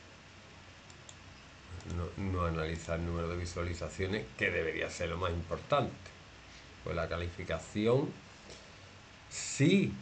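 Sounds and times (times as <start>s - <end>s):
computer mouse clicks: 0.8s - 2.0s.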